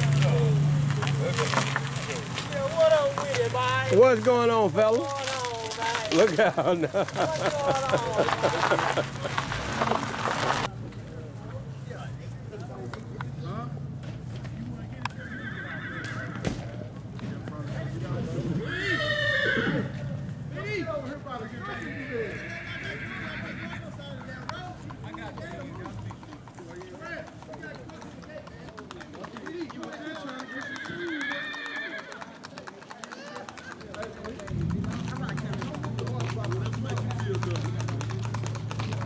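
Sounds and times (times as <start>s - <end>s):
horse hooves clip-clopping on pavement: 0.0s - 39.0s
people talking: 0.0s - 39.0s
people's voices: 0.0s - 39.0s
horse whinnying: 15.2s - 16.4s, 18.6s - 20.0s, 21.6s - 23.9s, 30.2s - 32.2s.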